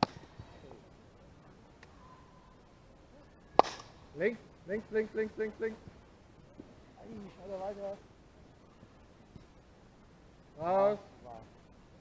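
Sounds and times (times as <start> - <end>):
baseball striking glove or bat: 3.6 - 4.0.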